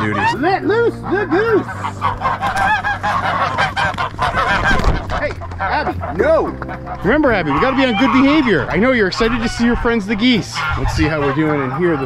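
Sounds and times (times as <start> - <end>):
geese honking: 0.0 - 12.0.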